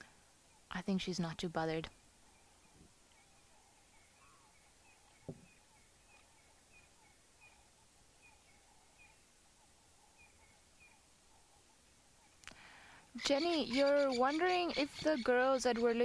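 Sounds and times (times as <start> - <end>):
soft knock: 5.3 - 5.5
soft bird chattering: 13.2 - 16.0.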